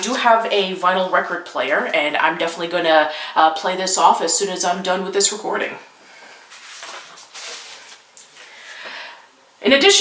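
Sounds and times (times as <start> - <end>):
rustling and handling noise: 6.1 - 9.0.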